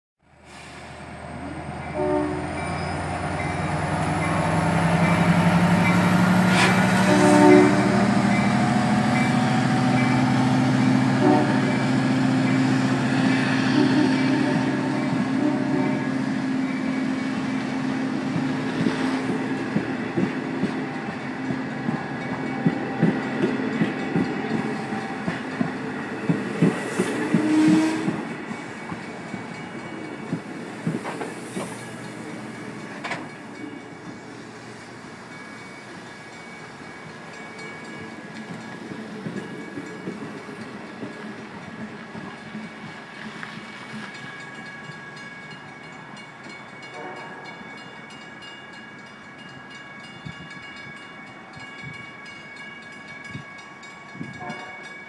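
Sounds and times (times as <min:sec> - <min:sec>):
low train rumble: 0:00.2 - 0:55.0
train wheels clicking over rail joints: 0:03.0 - 0:07.1, 0:18.2 - 0:34.2, 0:36.7 - 0:45.2.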